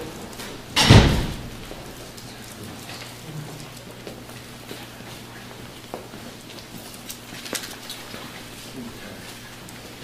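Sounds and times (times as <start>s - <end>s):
sharp thump: 0.8s - 1.6s.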